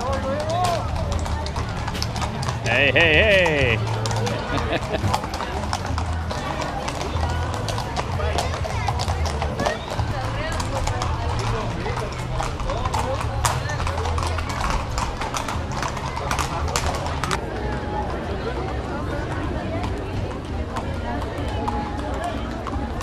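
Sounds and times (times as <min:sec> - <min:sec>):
crowd chatter: 0:00.0 - 0:23.0
hooves clip-clopping on pavement: 0:00.0 - 0:23.0.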